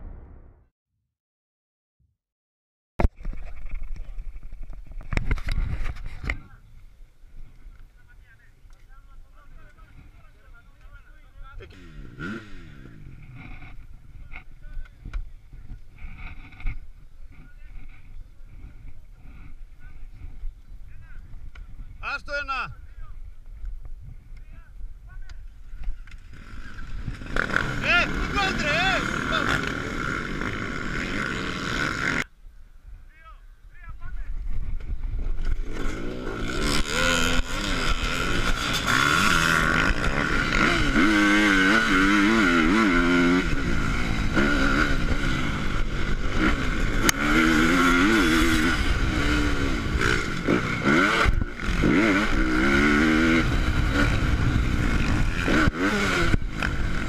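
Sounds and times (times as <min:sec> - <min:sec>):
motocross bike engines running: 0:03.2 - 0:32.3, 0:34.0 - 0:57.0
people talking: 0:07.7 - 0:11.8, 0:17.4 - 0:18.6, 0:27.8 - 0:29.9, 0:33.1 - 0:34.4.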